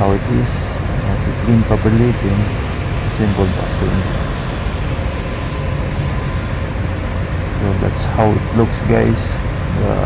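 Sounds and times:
faint steady tones: 0.0s - 10.0s
machinery droning: 0.0s - 10.0s.

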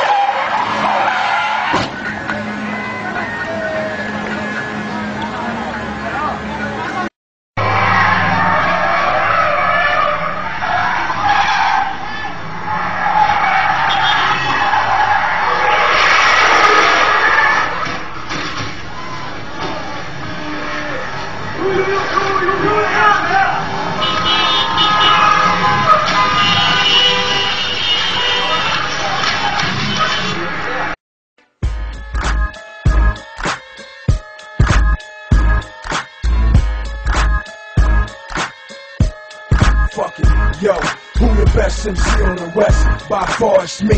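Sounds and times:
voices: 0.0s - 7.1s, 19.4s - 26.8s, 39.9s - 43.9s
tyres skidding and squealing: 0.0s - 31.0s, 31.9s - 43.9s
music: 1.8s - 5.8s, 31.4s - 43.9s.

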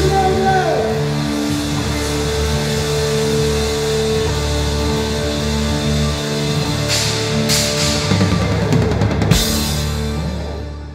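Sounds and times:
rock band holding a chord: 0.0s - 10.9s.

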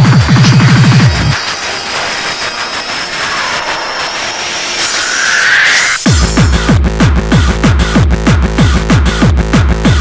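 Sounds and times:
pounding kick drum: 0.0s - 1.5s, 6.0s - 10.0s
noisy synth wash: 0.0s - 7.0s
rising synth sweep: 0.5s - 6.6s.

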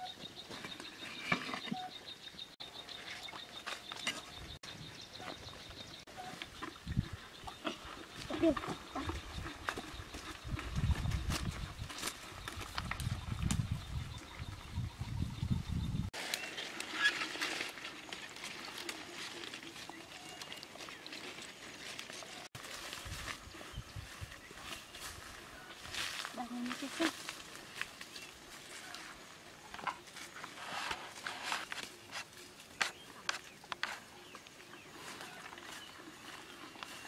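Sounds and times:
leafy plants rustling and snapping: 11.2s - 13.7s, 16.2s - 23.4s
footsteps on dry ground: 18.0s - 29.3s, 30.0s - 37.0s.

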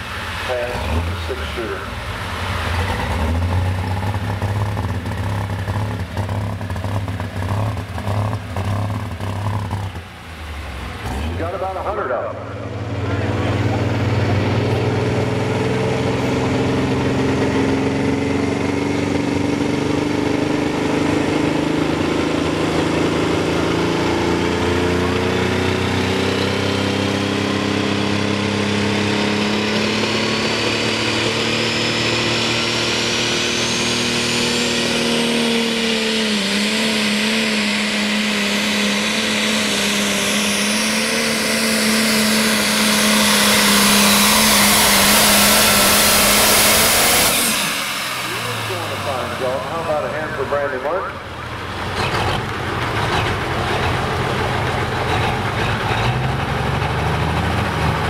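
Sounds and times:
tractor diesel engine running: 0.0s - 58.0s
thin whine climbing in pitch: 2.6s - 51.3s.

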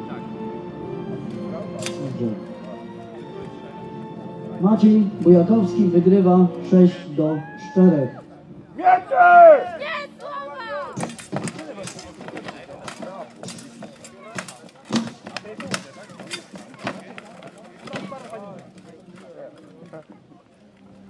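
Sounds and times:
murmur of spectators: 0.0s - 21.0s.

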